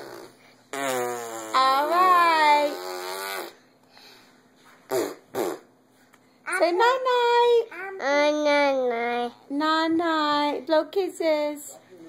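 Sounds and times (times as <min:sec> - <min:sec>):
child blowing raspberries: 0:00.0 - 0:01.6, 0:02.7 - 0:03.7, 0:04.9 - 0:05.7.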